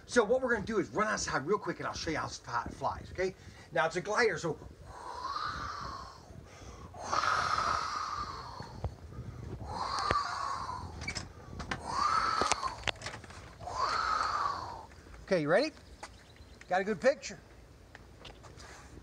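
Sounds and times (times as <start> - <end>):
person breathing heavily: 4.8 - 13.0, 13.6 - 15.1.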